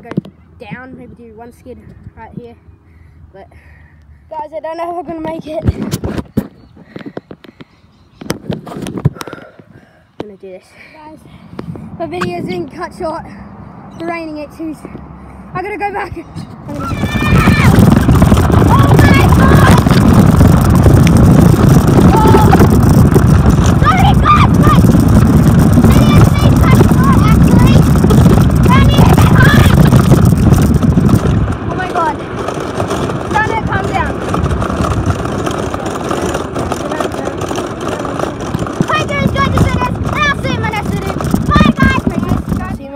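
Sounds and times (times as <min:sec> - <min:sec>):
wind buffeting microphone: 0:00.0 - 0:03.6, 0:04.2 - 0:42.9
cart wheels rumbling on asphalt: 0:04.4 - 0:42.9.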